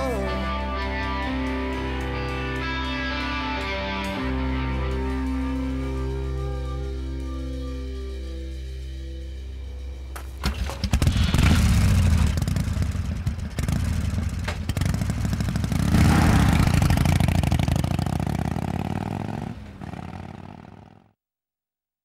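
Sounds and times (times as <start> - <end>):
loud engine with clatter: 10.2 - 21.0.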